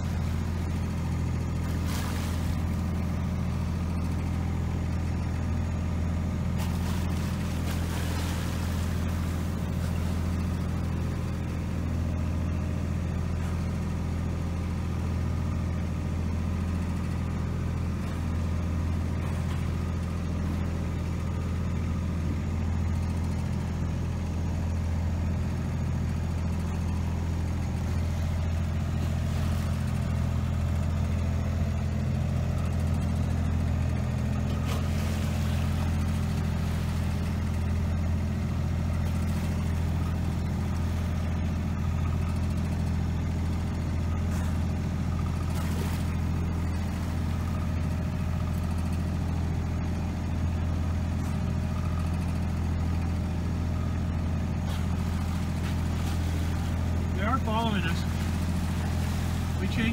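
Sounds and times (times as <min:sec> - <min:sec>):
boat engine drone: 0:00.0 - 0:59.9.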